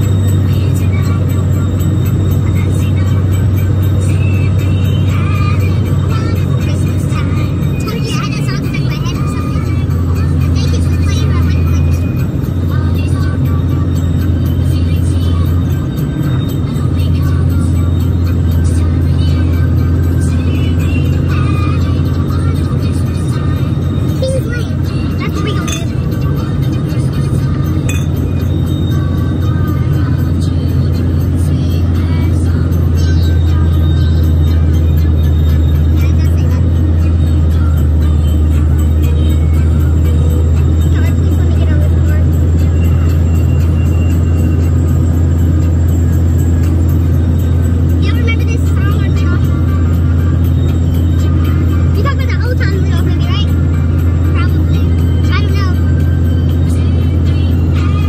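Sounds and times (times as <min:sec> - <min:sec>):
car road drone: 0:00.0 - 0:58.0
music in a car: 0:00.0 - 0:58.0.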